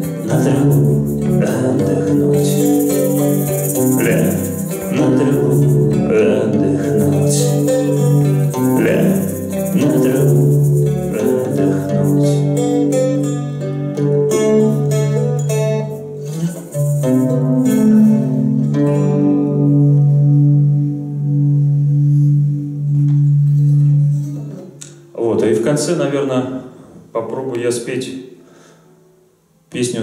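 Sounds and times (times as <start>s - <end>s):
acoustic guitar playing: 0.0s - 27.0s.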